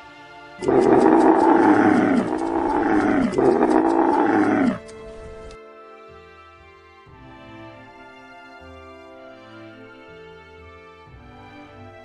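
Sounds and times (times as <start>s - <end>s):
camel bellowing: 0.6s - 5.0s.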